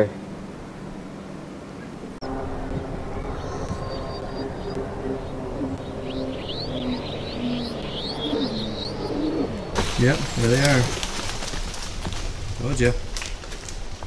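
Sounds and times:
high falling bird chirps: 3.0 - 11.0
lower bird calls: 3.0 - 11.0.

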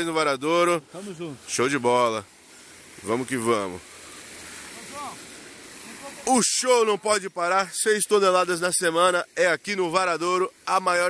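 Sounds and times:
outdoor rushing hiss: 0.0 - 11.0.

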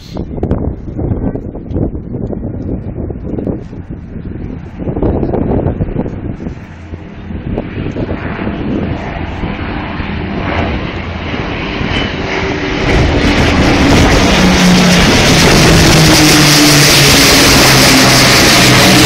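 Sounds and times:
jet flying: 0.0 - 19.0
propeller aircraft engine drone: 0.0 - 19.0.

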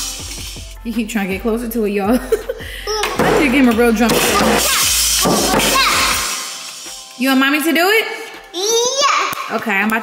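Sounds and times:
toy drums struck: 0.0 - 0.7, 3.0 - 7.0.

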